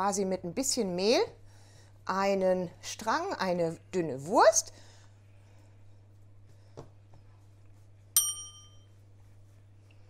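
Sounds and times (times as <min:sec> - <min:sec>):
light metallic ding: 0:08.2 - 0:08.9.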